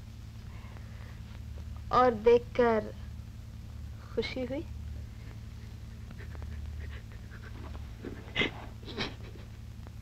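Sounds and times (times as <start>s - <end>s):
soft breathy laughter: 5.2s - 9.7s.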